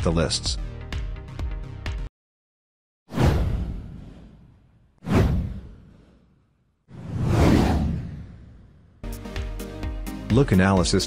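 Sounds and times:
deep whoosh sound effect: 3.1s - 8.9s.

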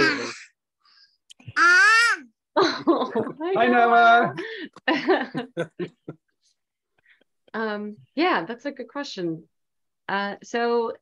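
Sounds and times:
toddler shouting: 0.0s - 0.4s, 1.5s - 2.3s
adults' wordless vocal reactions: 0.0s - 0.5s.

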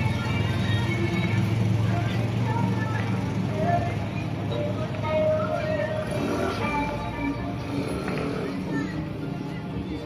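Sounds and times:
faint music: 0.0s - 10.0s
outdoor voices: 0.0s - 10.0s
vehicle engine humming: 0.0s - 10.0s.

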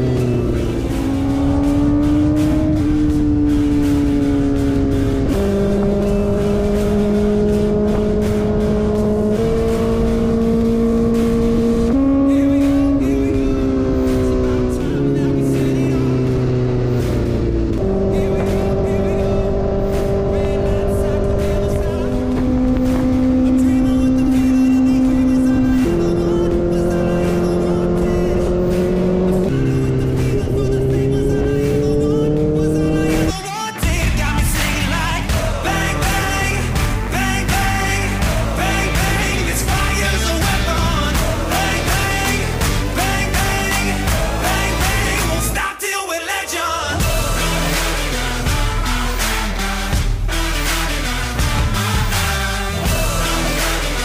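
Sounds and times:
motorcycle engine running: 0.0s - 45.6s, 51.3s - 54.0s
music: 0.0s - 54.0s.

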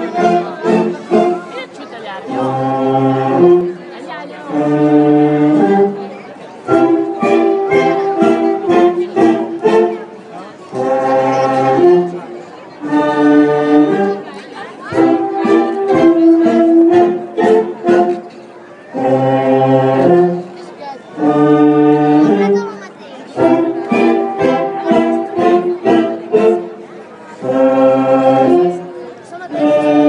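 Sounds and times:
crowd chatter: 0.0s - 30.0s
live band playing: 4.5s - 20.6s, 23.3s - 28.8s.

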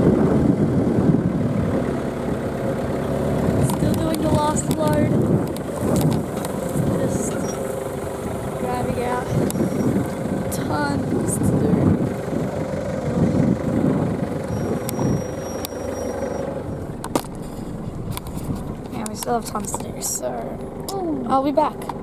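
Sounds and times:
truck engine running: 0.0s - 22.0s.

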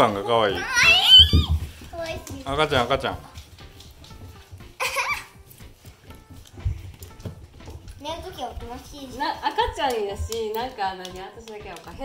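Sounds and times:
puppy feet tapping on wooden floor: 0.0s - 12.0s.

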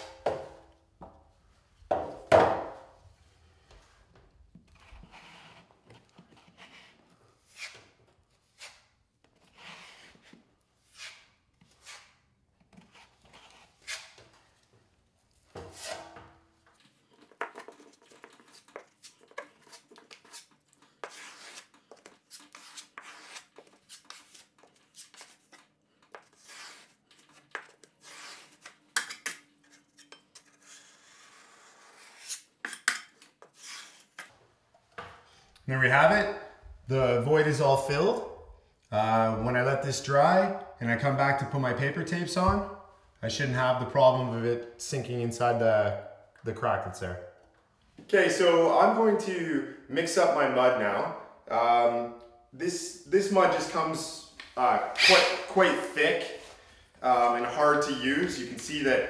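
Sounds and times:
putty knife scraping drywall: 4.6s - 14.6s, 15.5s - 16.2s, 16.9s - 34.3s, 55.0s - 55.8s.

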